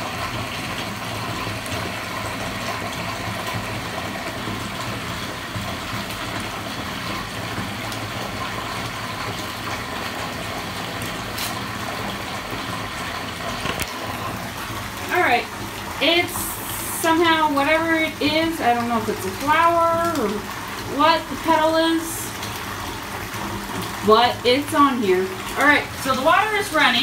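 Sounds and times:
water running into bathtub: 0.0s - 27.0s.

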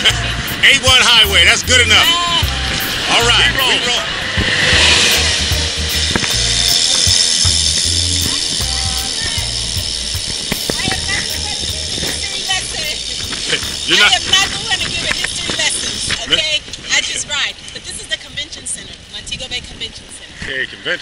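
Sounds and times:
road noise: 0.0s - 21.0s
wind rushing over microphone: 1.7s - 20.5s.

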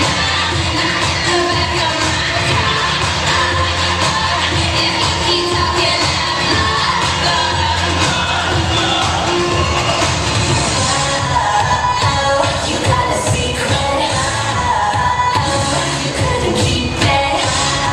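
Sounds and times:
pop song over sound system: 0.0s - 17.9s.

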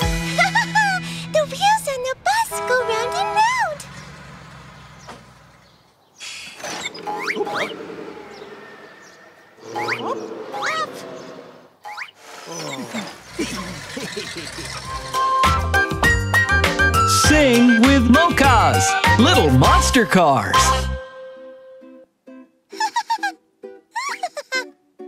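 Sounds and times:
high-pitched cartoon voices exclaiming: 9.6s - 11.0s.

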